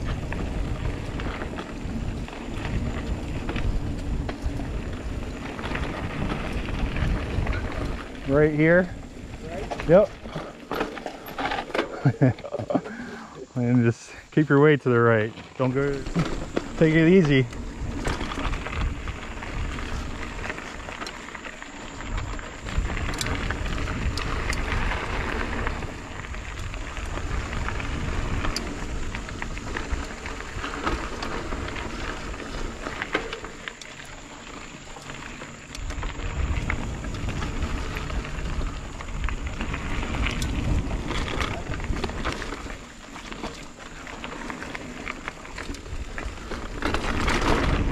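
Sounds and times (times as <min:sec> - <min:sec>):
wind rumbling on microphone: 0:00.0 - 0:13.8, 0:15.3 - 0:47.9
bike clicks and rattles: 0:00.0 - 0:47.9
tyres crackling on dirt and leaves: 0:00.0 - 0:47.9.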